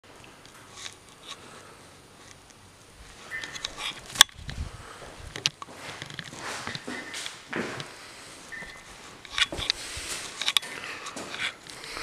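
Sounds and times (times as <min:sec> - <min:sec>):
footsteps: 0:03.0 - 0:12.0.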